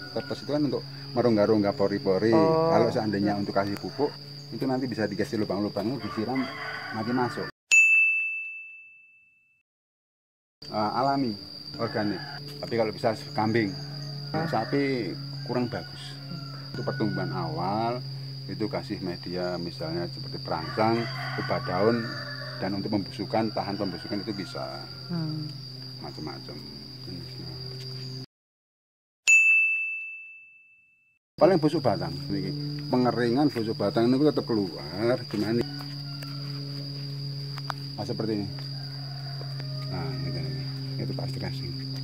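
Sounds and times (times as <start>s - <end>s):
insect drone: 0.0s - 7.5s, 10.6s - 28.3s, 31.4s - 42.0s
bell-like ding: 7.7s - 9.6s, 29.3s - 31.2s.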